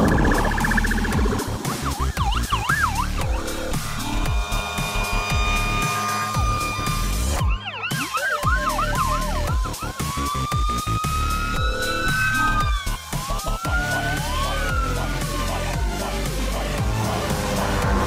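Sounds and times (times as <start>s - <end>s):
siren fast yelp: 0.0s - 3.6s, 5.2s - 17.3s
electronic music with steady beat: 0.0s - 18.0s
siren rising and falling wail: 0.0s - 18.0s.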